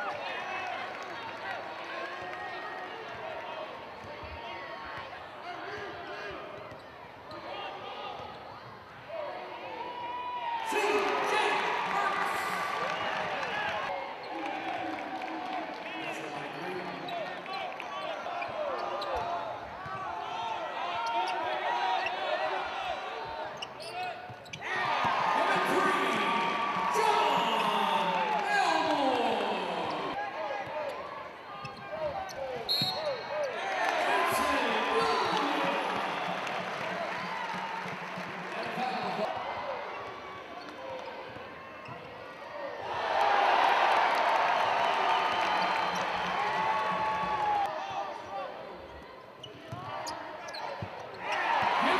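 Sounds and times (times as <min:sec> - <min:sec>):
busy arena background: 0:00.0 - 0:51.9
crowd noise: 0:00.0 - 0:51.9
sneakers squeaking on court: 0:23.3 - 0:25.1, 0:31.6 - 0:33.6, 0:48.9 - 0:51.3.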